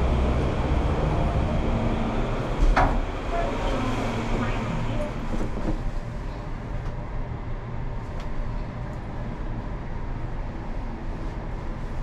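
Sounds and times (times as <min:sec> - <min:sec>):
elevator rumble: 0:00.0 - 0:12.0.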